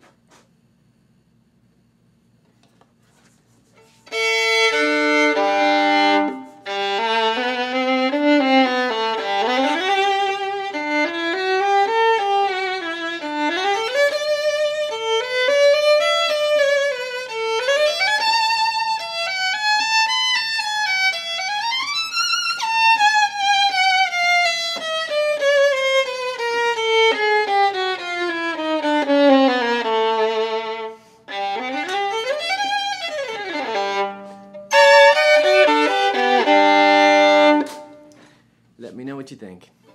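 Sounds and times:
solo violin played with bow: 3.8s - 38.2s.

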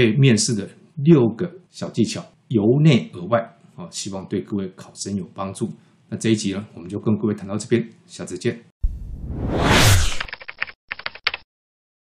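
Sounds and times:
whoosh: 8.8s - 10.3s.

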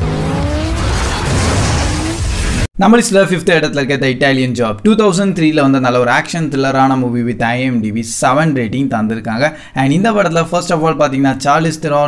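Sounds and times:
car engines revving hard: 0.0s - 2.3s
tyre and road noise rumble: 0.0s - 2.7s.

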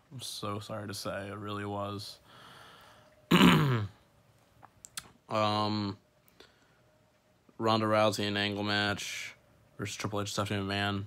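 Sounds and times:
man clearing his throat: 3.3s - 4.0s.

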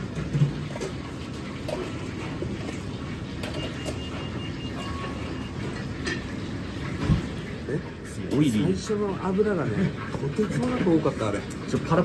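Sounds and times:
kitchen machinery rumbling roar: 0.0s - 12.0s.

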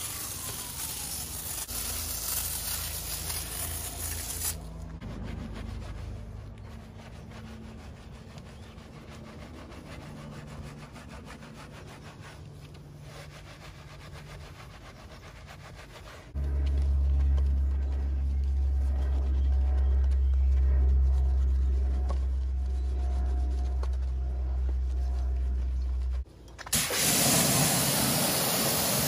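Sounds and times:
wash mitt scrubbing wheel: 0.0s - 26.2s
loud low rumble: 16.4s - 26.3s.

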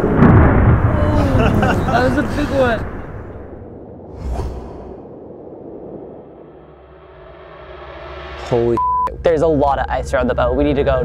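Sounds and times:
low rumble: 0.0s - 8.8s
short whoosh: 2.9s - 8.8s.

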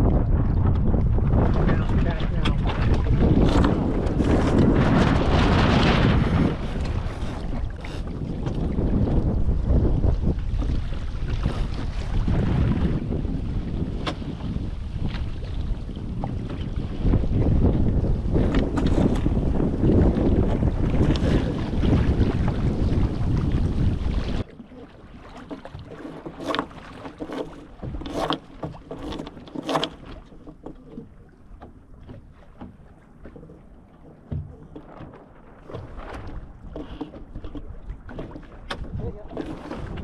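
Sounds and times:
water splashing against hull: 0.0s - 40.0s
wind buffeting microphone: 0.0s - 40.0s.

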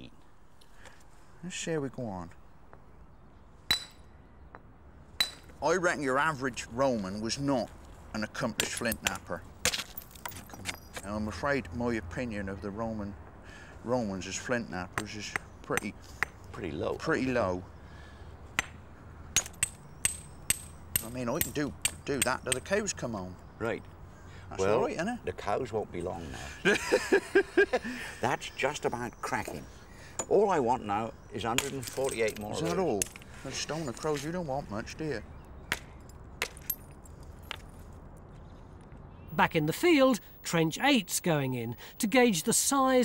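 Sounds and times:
sharp clinking strikes on flint: 19.4s - 22.7s.

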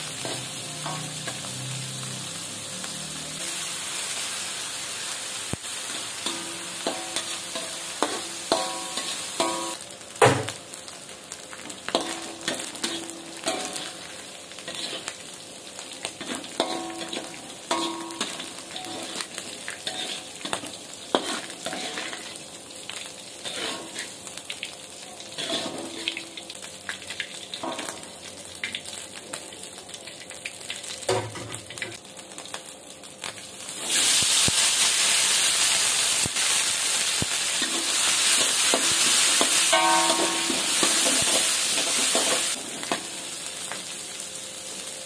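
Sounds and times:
fish frying in hot oil: 0.0s - 45.0s
metal spatula scraping a wok: 14.7s - 15.1s, 16.2s - 22.4s, 23.4s - 24.2s, 25.3s - 26.2s.

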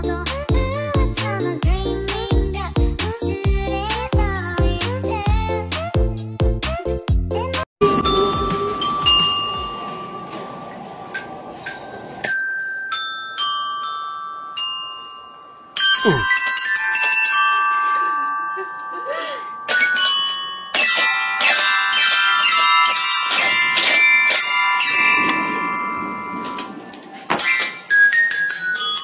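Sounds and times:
toy xylophone notes: 11.2s - 25.8s.

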